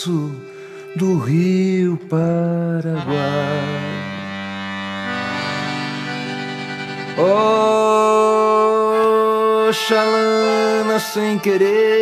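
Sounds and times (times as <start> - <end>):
instrumental ballad chords: 0.0 - 12.0.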